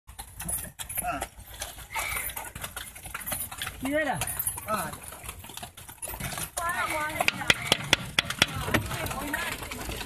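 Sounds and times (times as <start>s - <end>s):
horse hooves clip-clopping on dirt: 0.1s - 10.0s
voices: 0.4s - 10.0s.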